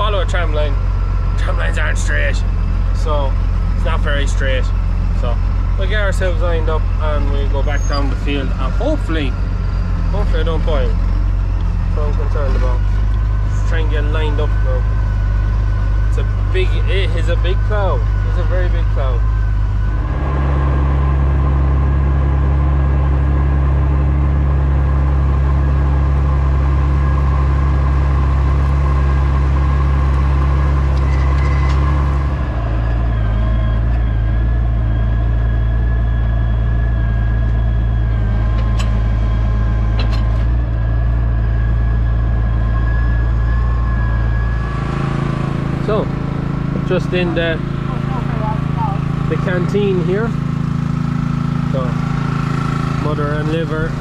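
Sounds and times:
tractor engine running under load: 0.0s - 54.0s.

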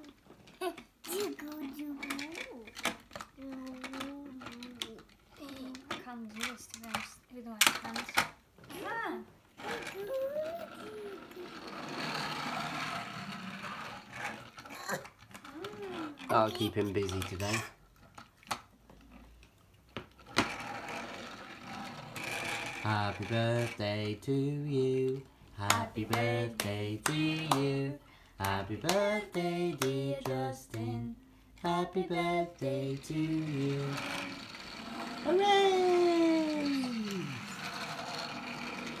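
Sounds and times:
toy tractor wheels rattling: 0.0s - 8.2s, 9.6s - 19.4s, 20.1s - 31.0s, 31.6s - 39.0s.

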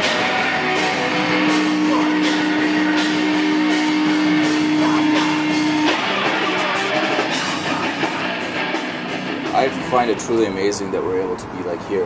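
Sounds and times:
held note over the band: 0.0s - 10.2s
grindcore band playing live: 0.0s - 10.4s.

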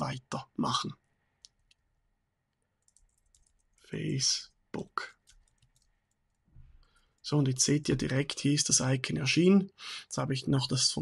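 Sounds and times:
keyboard keys clicking: 2.8s - 3.7s.

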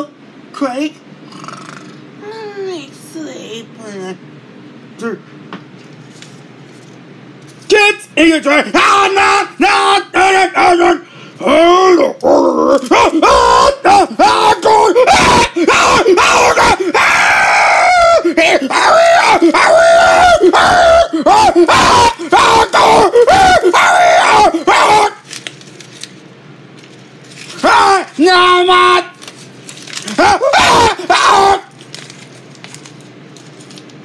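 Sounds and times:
person yelling and shrieking: 8.6s - 25.2s, 27.6s - 29.2s, 30.0s - 31.7s.

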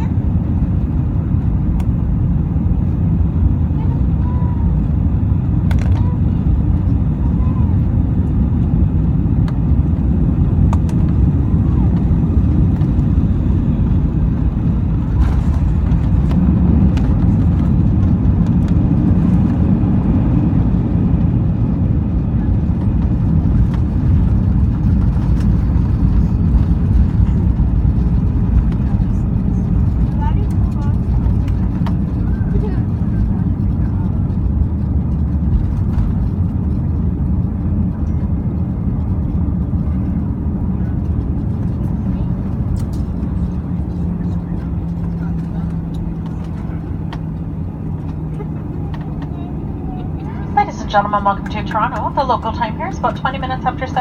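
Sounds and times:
aircraft engines and wheels rumbling: 0.0s - 54.0s
steady low hum: 0.0s - 54.0s.

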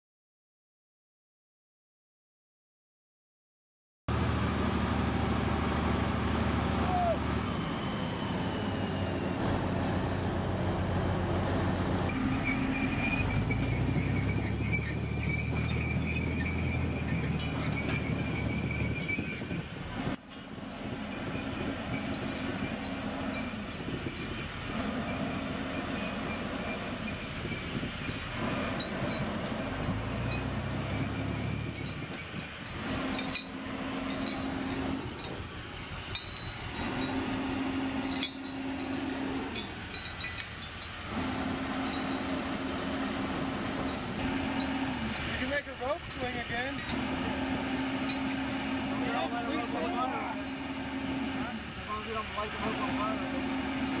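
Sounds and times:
diesel engine running: 4.1s - 54.0s
hoist chain clinking: 12.1s - 41.2s, 41.8s - 42.6s, 45.5s - 47.1s, 47.9s - 50.5s.

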